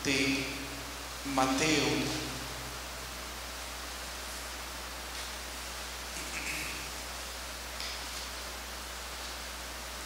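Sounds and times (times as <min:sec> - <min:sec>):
background hiss: 0:00.0 - 0:10.0
constant low hum: 0:00.0 - 0:10.0.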